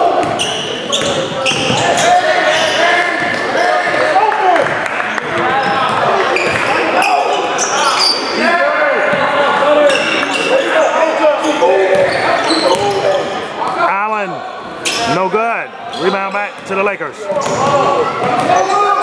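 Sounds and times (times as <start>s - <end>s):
voices calling out: 0.0s - 19.0s.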